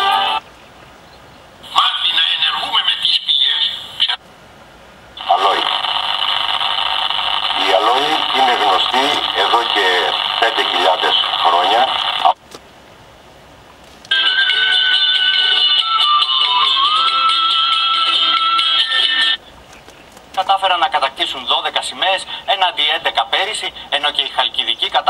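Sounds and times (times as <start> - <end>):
music with held tones: 0.0 - 0.4, 14.1 - 19.4
low hiss: 0.0 - 14.1
man speaking on tv: 1.7 - 4.2, 5.2 - 5.8, 7.6 - 12.4, 20.4 - 25.0.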